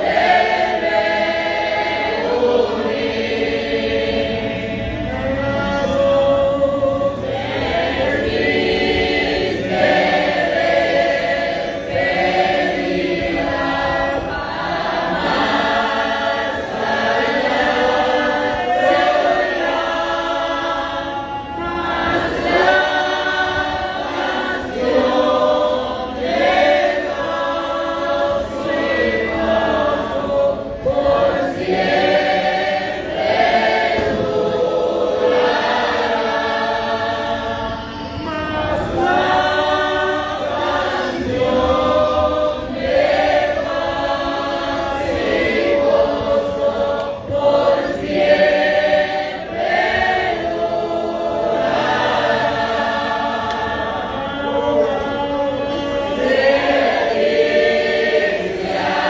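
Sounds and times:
voices singing a hymn: 0.0 - 59.0.

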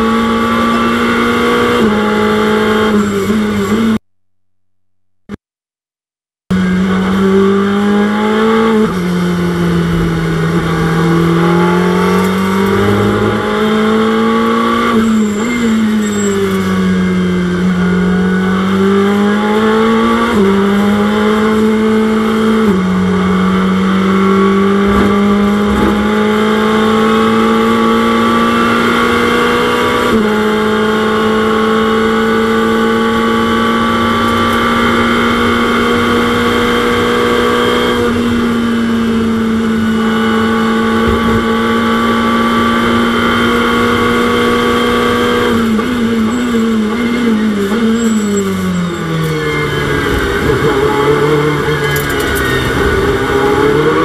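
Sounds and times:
racing car engine accelerating: 6.6 - 54.0.

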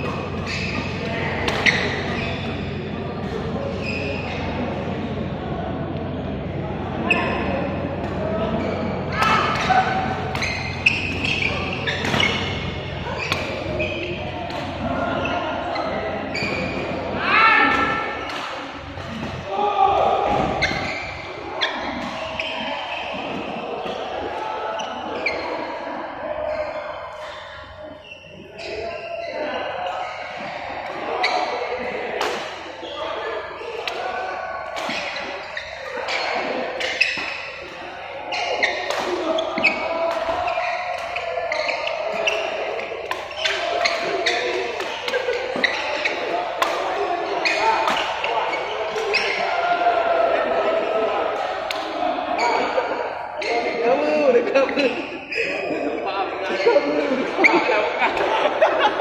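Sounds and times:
rackets hitting shuttlecock: 0.0 - 3.4, 9.0 - 14.9, 17.7 - 19.4, 30.4 - 32.6, 33.6 - 34.0, 34.7 - 49.4, 51.4 - 52.0.

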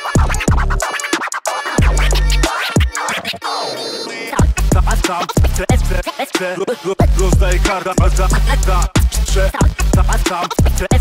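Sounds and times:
hip-hop beat: 0.0 - 11.0
turntable scratching: 0.0 - 11.0
deep bass: 0.2 - 0.8, 1.8 - 2.5, 4.4 - 6.0, 7.0 - 11.0.

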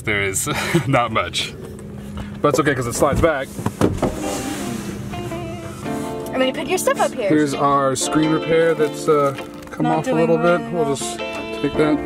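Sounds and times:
guitar held notes: 4.1 - 12.0.

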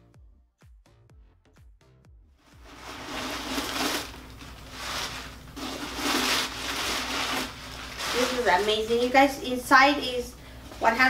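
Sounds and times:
tissue paper rustling and crinkling: 2.5 - 10.2.

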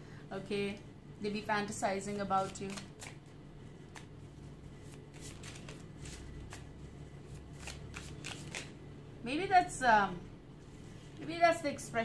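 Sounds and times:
cards being shuffled: 2.4 - 3.3, 4.8 - 8.8.

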